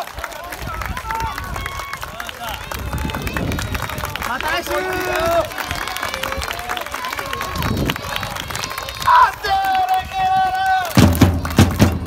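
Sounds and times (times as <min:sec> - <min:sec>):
crowd chatter: 0:00.0 - 0:12.0
hand clapping: 0:03.0 - 0:12.0.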